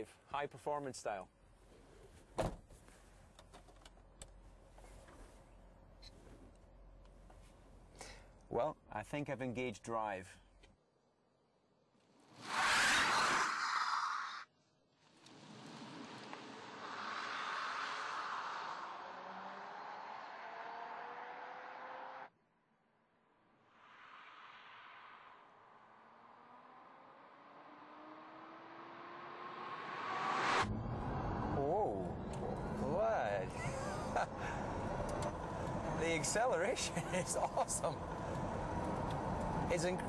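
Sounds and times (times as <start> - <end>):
rushing whoosh: 29.5 - 33.4.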